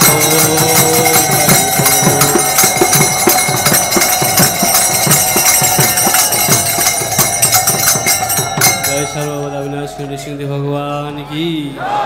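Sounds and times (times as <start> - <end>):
man chanting: 0.0 - 3.5, 8.7 - 11.8.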